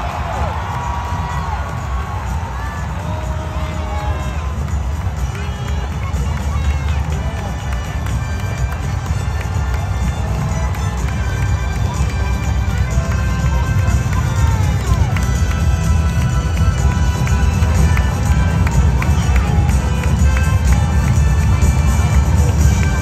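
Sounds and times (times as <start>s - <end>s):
crowd shouts: 0.0s - 15.4s
large crowd rumble: 0.0s - 23.0s
music: 0.0s - 23.0s.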